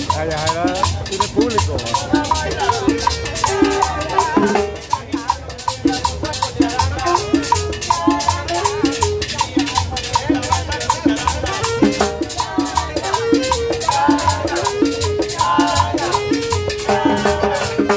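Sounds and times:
timbales and conga: 0.0s - 17.9s
upright bass line: 0.0s - 17.9s
saxophone melody: 1.2s - 17.9s.

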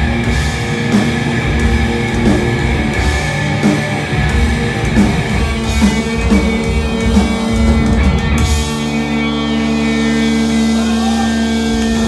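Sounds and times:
bass guitar: 0.0s - 12.0s
distorted electric guitars: 0.0s - 12.0s
drums: 0.0s - 12.0s.

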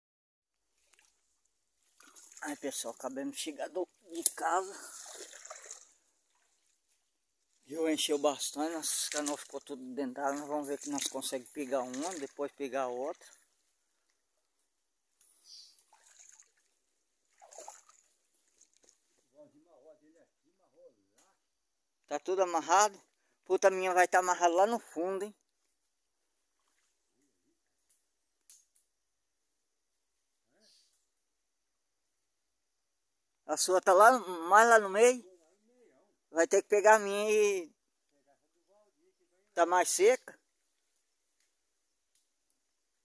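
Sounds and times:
squelching steps on wet mud: 0.8s - 3.0s, 3.6s - 6.9s, 7.5s - 14.1s, 15.3s - 16.7s, 17.3s - 19.2s.

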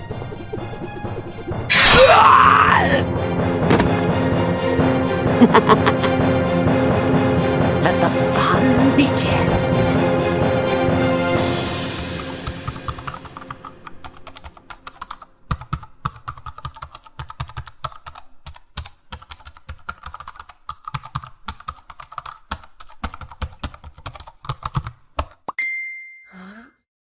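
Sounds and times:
fast keyboard typing: 11.9s - 25.5s
short ding: 25.6s - 26.4s.

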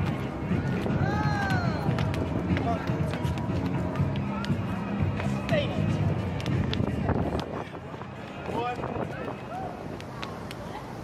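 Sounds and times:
footsteps running on stone: 0.0s - 10.6s
music: 0.0s - 11.0s.

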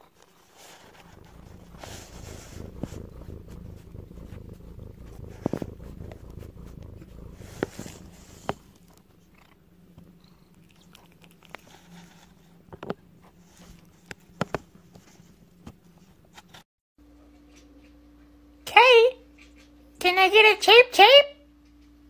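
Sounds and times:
cat purring: 0.0s - 16.6s.

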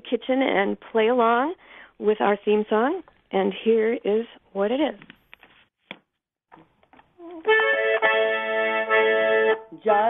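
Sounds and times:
accordion playing chord: 7.3s - 9.8s.

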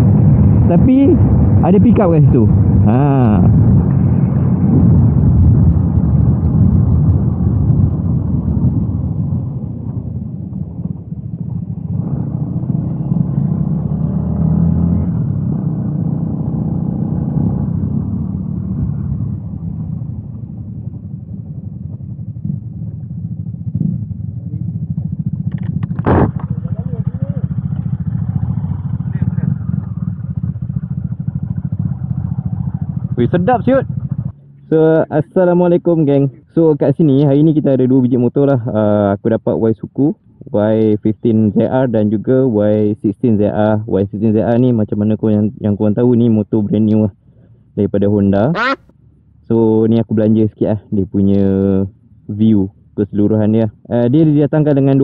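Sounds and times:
wind noise: 0.0s - 30.8s
motorcycle engine running: 0.0s - 34.8s.

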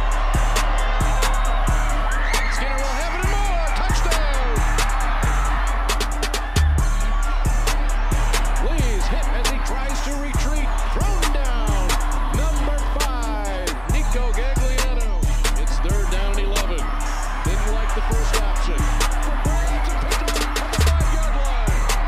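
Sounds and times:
bass-heavy beat music: 0.0s - 22.0s.

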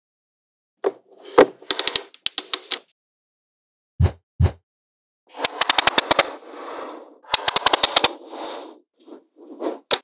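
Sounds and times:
magnetic balls snapping together: 5.4s - 6.3s.

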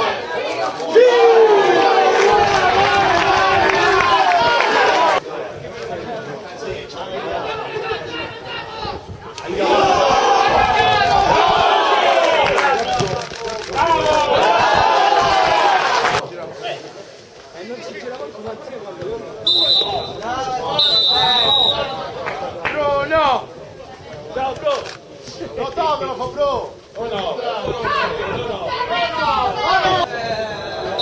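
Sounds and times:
referee's whistle blasts: 19.4s - 22.1s.

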